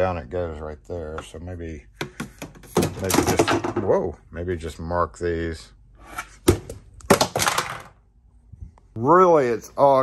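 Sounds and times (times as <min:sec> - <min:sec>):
plastic bin lid clattering: 0:02.0 - 0:03.9.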